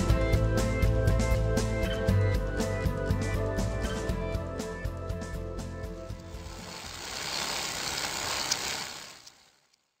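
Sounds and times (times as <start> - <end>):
background music: 0.0 - 7.3.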